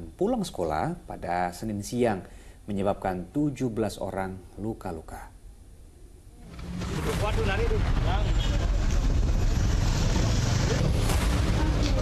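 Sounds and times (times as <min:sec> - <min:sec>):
steady low rumble: 0:06.3 - 0:12.0.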